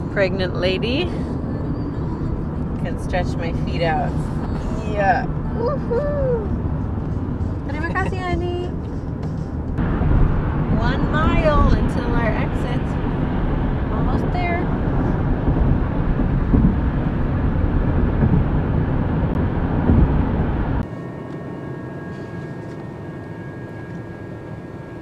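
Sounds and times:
car road and tyre noise: 0.0 - 25.0.

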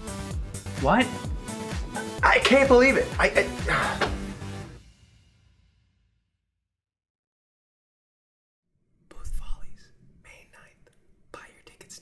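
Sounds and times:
person whispering: 9.1 - 12.0.

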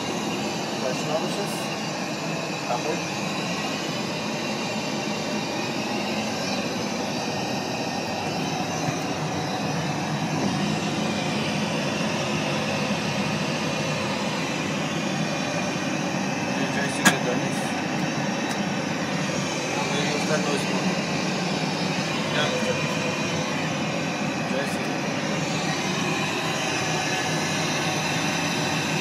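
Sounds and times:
airliner cabin noise: 0.0 - 29.0.

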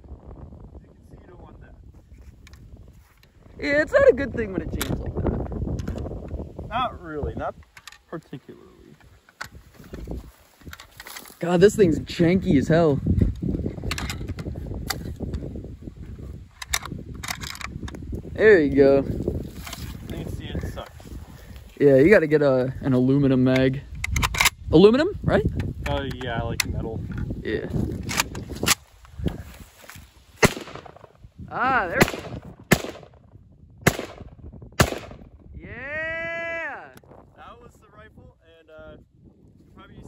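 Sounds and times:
rifle shots with echo: 30.4 - 31.0, 31.9 - 33.2, 33.8 - 35.2.

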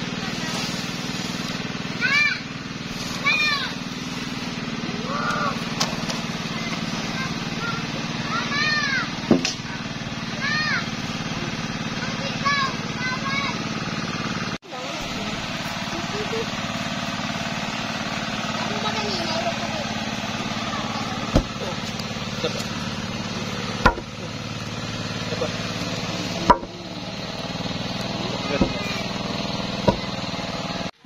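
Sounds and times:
steady droning hum: 0.0 - 13.4, 14.8 - 30.9
soil tamping knocks: 21.3 - 22.7, 23.7 - 24.2, 29.8 - 30.2.

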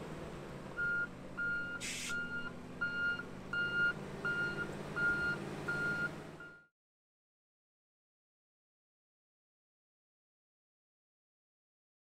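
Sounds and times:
engine running low: 0.0 - 6.7.

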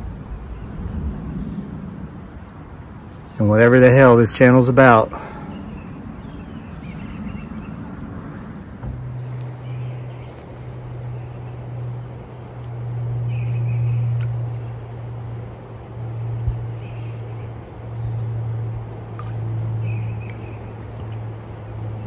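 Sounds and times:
low hum: 0.0 - 22.0
outdoor background noise: 0.0 - 22.0.

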